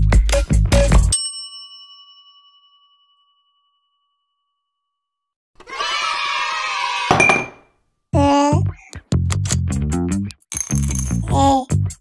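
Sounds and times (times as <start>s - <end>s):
music: 0.0s - 1.2s, 8.2s - 12.0s
bell-like ding: 1.2s - 5.0s.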